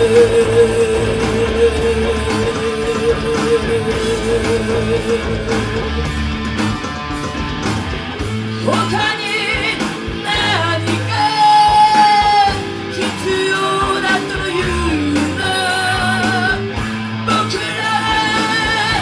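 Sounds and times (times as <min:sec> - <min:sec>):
woman singing with vibrato: 0:00.0 - 0:06.0, 0:08.6 - 0:16.6, 0:17.3 - 0:19.0
distorted electric guitar: 0:00.0 - 0:19.0
drums and bass beat: 0:00.0 - 0:19.0.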